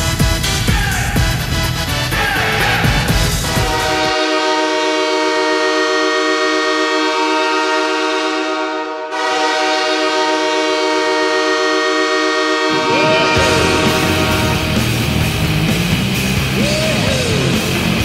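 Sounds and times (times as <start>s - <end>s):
stadium song: 0.0s - 5.7s, 9.1s - 18.0s
stadium horn blasts: 3.4s - 16.0s.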